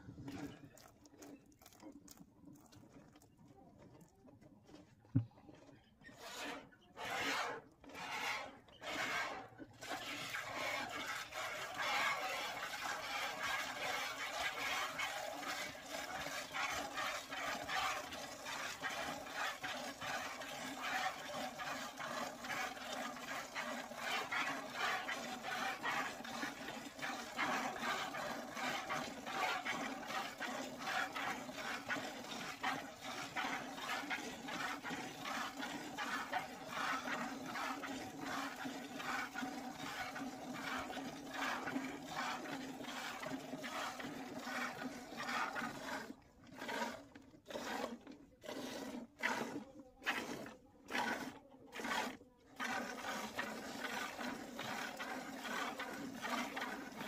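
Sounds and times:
milk squirting into plastic bucket: 0:00.1 - 0:03.3, 0:09.2 - 0:57.0.

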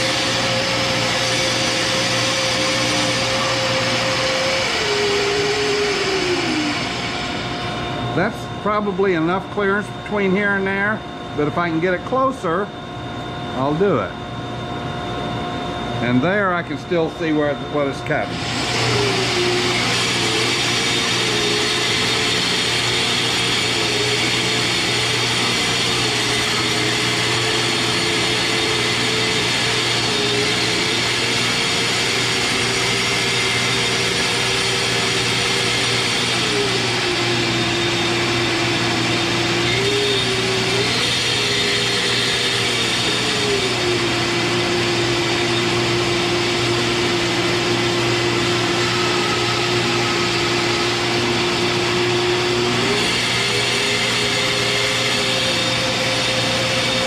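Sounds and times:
bandsaw cutting wood: 0:00.0 - 0:07.4, 0:18.3 - 0:57.0
motor hum: 0:00.0 - 0:57.0.

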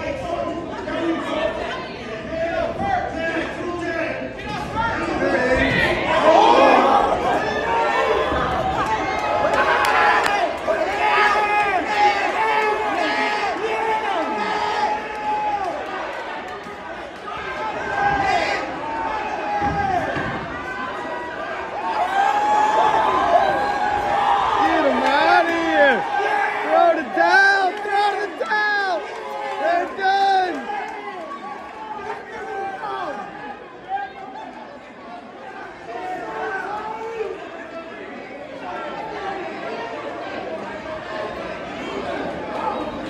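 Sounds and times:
crowd chatter: 0:00.0 - 0:43.0
crowd shouting and yelling: 0:00.0 - 0:43.0.

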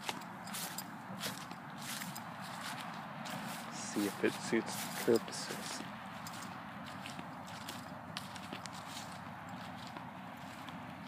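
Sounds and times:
footsteps through dry grass: 0:00.0 - 0:11.0
grass rustling: 0:00.0 - 0:11.0.

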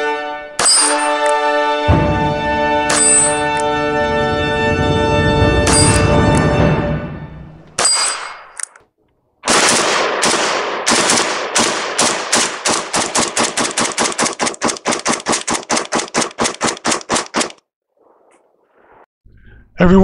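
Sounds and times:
rifle shots cracking: 0:09.4 - 0:17.6.

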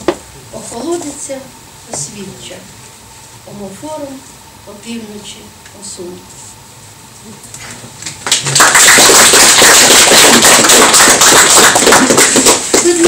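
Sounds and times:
audience applauding: 0:08.2 - 0:13.0.

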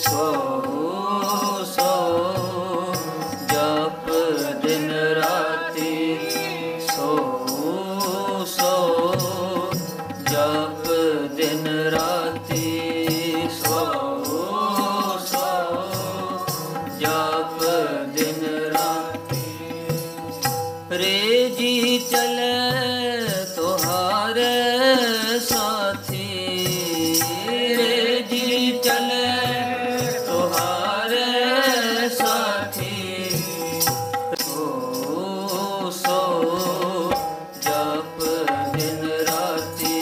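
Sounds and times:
harmonium chords: 0:00.0 - 0:40.0
man singing ornamented melody: 0:00.0 - 0:40.0.

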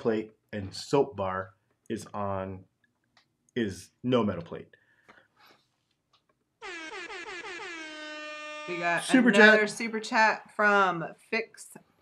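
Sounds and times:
air horn blasts: 0:06.6 - 0:09.3.

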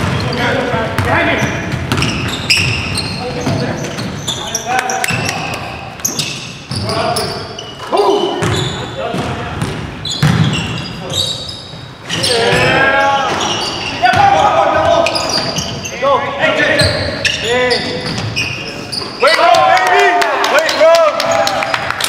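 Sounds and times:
sneakers squeaking: 0:00.0 - 0:19.5
players calling out: 0:00.0 - 0:22.0
basketball bouncing: 0:00.9 - 0:04.2, 0:08.4 - 0:10.8.

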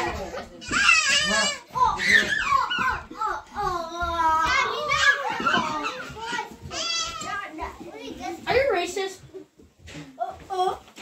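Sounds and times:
children calling out and chattering: 0:00.0 - 0:11.0.

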